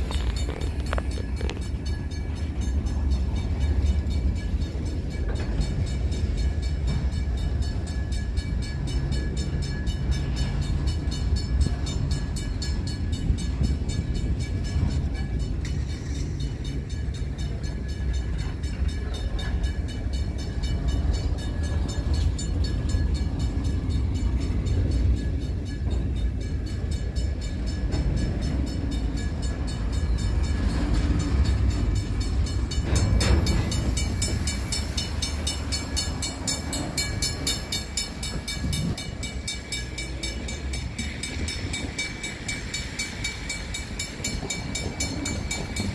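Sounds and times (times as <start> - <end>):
freight train wheels rumbling: 0.0 - 45.9.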